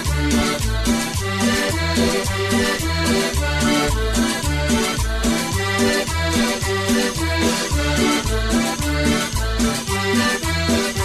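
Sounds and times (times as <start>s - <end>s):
bouncing bass line: 0.0s - 11.0s
live band playing instrumental: 0.0s - 11.0s.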